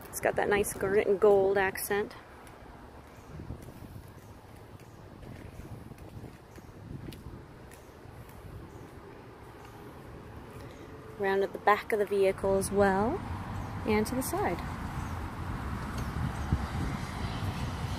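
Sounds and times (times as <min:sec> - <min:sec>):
faint outdoor background noise: 0:00.0 - 0:17.9
footsteps: 0:02.3 - 0:11.0.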